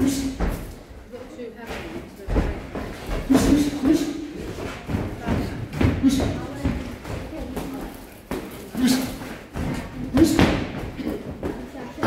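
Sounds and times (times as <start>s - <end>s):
footwork on ring canvas: 0.0s - 12.0s.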